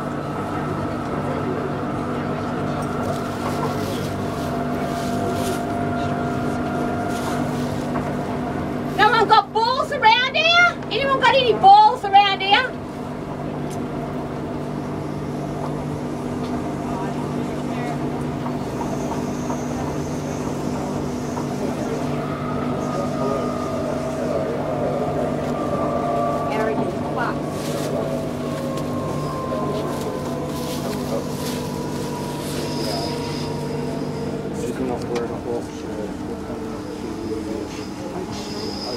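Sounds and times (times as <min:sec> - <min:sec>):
train carriage hum and rumble: 0:00.0 - 0:38.9
faint falling whine: 0:18.9 - 0:38.5.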